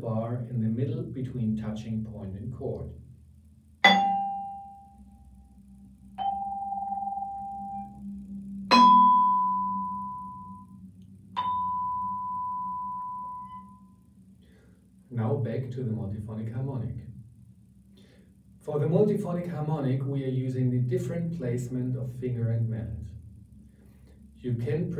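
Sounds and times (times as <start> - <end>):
vibraphone notes ringing: 3.8 - 5.0, 6.2 - 8.0, 8.7 - 10.8, 11.4 - 13.9.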